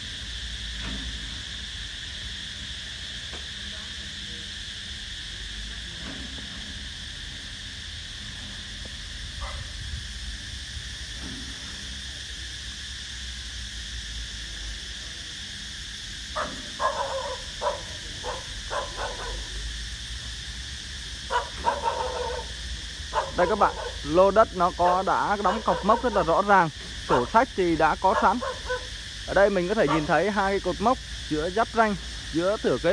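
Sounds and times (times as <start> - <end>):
high insect drone: 0.0 - 32.9
dog barking: 9.4 - 9.8, 16.4 - 19.6, 21.3 - 24.1, 24.8 - 26.3, 27.1 - 27.4, 28.0 - 29.0, 29.8 - 30.2.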